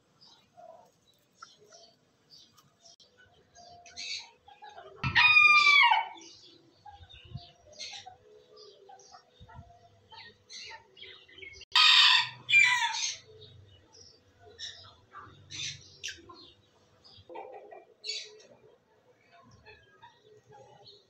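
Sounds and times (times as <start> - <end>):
small birds chirping: 0.0 - 11.8, 12.4 - 21.0
chicken calling: 3.8 - 6.4.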